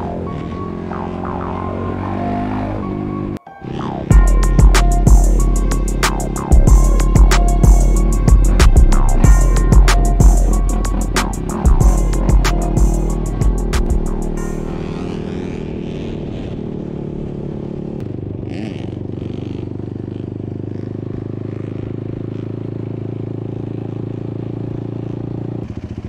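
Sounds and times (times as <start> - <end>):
quad engine running: 0.0 - 26.0.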